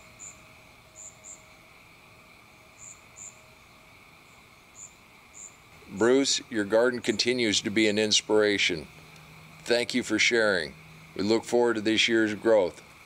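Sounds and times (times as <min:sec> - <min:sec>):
insect high trill: 0:00.0 - 0:13.0
very high insect chirps: 0:00.0 - 0:13.0.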